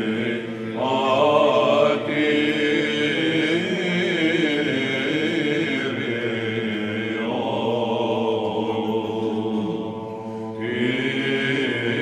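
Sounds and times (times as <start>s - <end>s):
male choir chanting: 0.0s - 12.0s.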